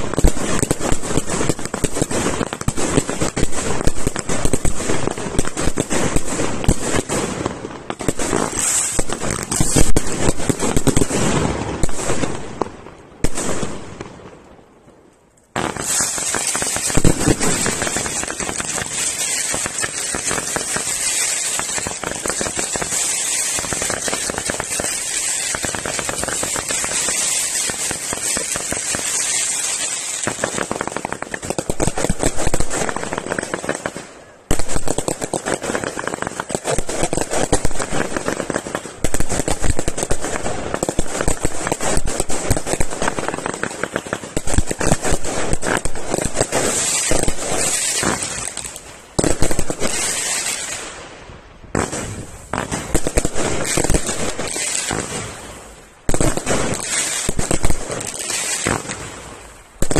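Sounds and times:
fireworks bangs: 0.0 - 14.4, 15.5 - 59.9
fireworks crackling: 0.0 - 59.9.

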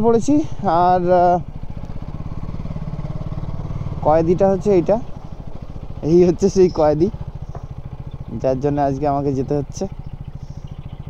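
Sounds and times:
man speaking: 0.0 - 1.5, 4.0 - 5.1, 6.0 - 7.2, 8.3 - 9.9
motorcycle engine running: 0.0 - 11.0.

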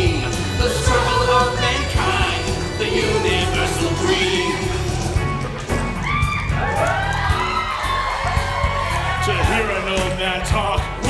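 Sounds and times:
live rock music: 0.0 - 11.0
crowd shouting and whooping: 3.1 - 10.8.

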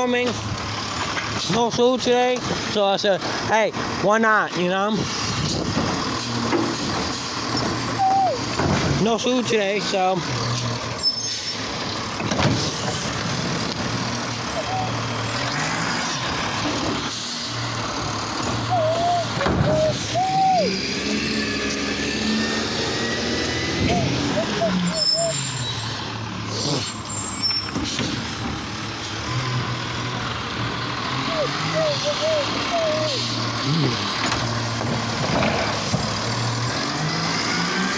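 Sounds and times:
garbage truck engine revving: 4.8 - 37.9
short high squeals: 8.0 - 8.5, 11.0 - 11.7, 14.5 - 15.0, 18.6 - 21.4, 23.8 - 27.8.

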